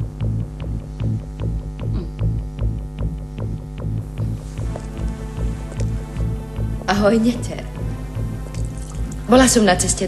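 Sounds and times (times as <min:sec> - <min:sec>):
throbbing low drone: 0:00.0 - 0:09.9.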